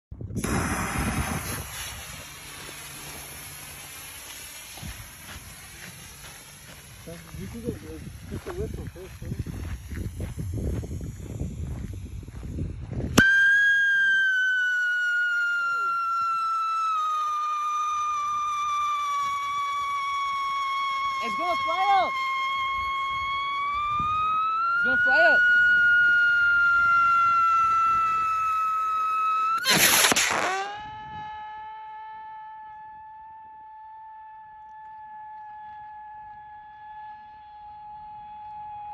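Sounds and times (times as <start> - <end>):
firework rocket whistling hiss: 0.2 - 32.7.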